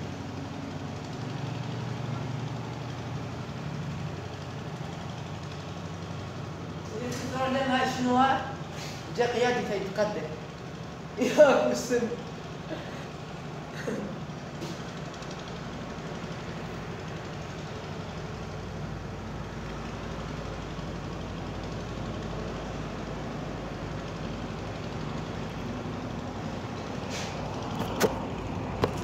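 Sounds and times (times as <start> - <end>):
engine idling: 0.0 - 29.0.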